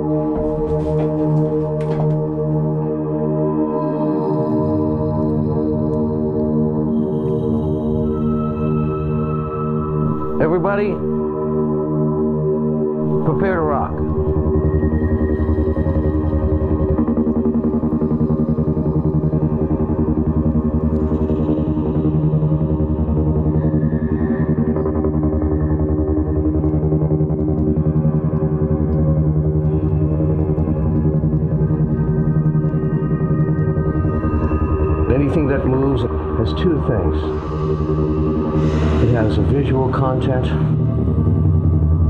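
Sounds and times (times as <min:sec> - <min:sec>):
monochord string drone: 0:00.0 - 0:42.0.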